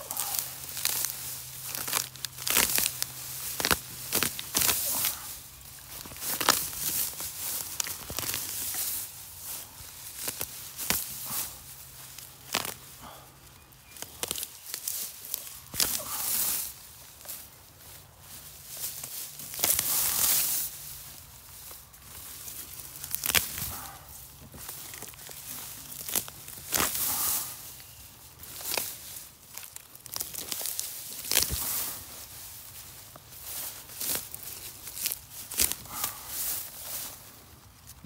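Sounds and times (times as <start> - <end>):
hand rustling through grass: 0.0 - 38.0.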